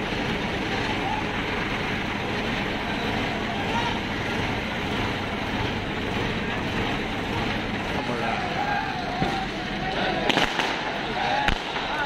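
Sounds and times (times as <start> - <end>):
crane diesel engine running: 0.0 - 12.0
crowd chatter: 0.0 - 12.0.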